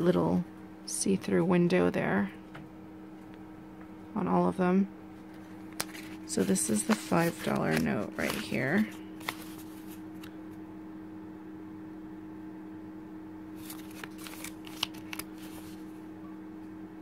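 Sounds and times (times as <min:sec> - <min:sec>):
steady low hum: 0:00.0 - 0:17.0
plastic banknote crinkling: 0:05.4 - 0:10.3, 0:13.6 - 0:15.9.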